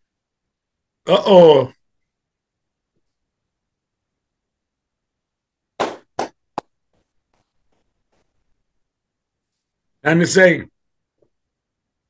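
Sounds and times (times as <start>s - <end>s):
short sharp knocks: 5.8s - 6.7s.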